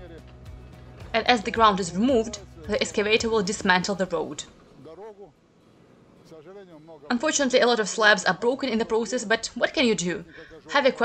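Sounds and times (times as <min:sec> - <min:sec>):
quiet outdoor background: 0:00.0 - 0:11.0.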